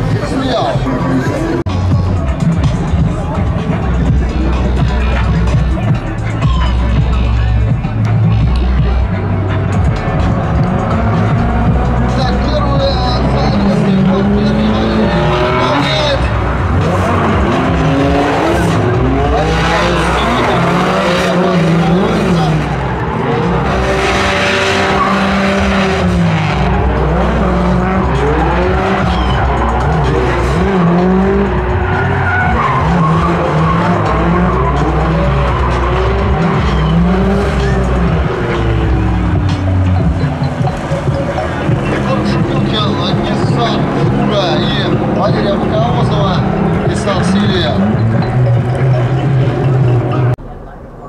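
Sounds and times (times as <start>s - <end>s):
car engines revving: 0.0s - 51.0s
tyre squeal: 27.8s - 39.1s.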